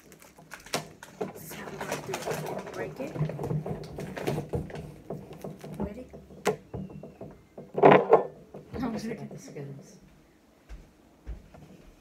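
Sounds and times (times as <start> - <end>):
bread being broken apart: 0.0 - 1.2.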